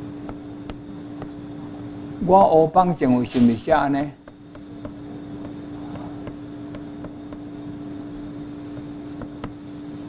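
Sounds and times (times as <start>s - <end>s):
chalk tapping and scratching: 0.0s - 2.2s, 4.0s - 7.5s, 8.5s - 10.0s
steady low hum: 0.0s - 10.0s.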